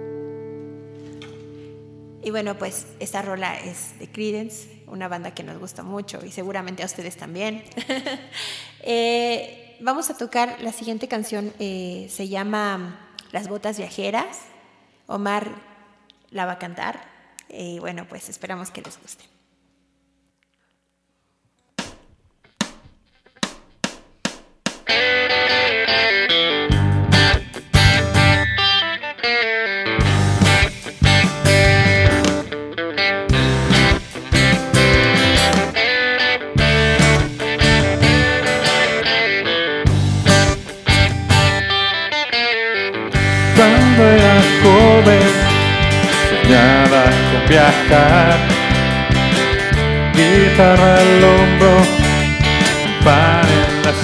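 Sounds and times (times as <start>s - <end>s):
country guitar music: 0.0s - 7.7s, 24.8s - 54.0s
pulsing bass beat: 26.7s - 28.5s, 30.0s - 32.5s, 33.3s - 35.8s, 36.6s - 39.1s, 39.9s - 41.8s, 43.2s - 54.0s.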